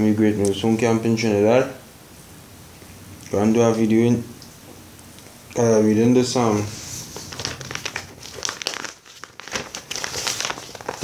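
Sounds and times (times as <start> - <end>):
crackling and rustling: 6.3 - 11.0.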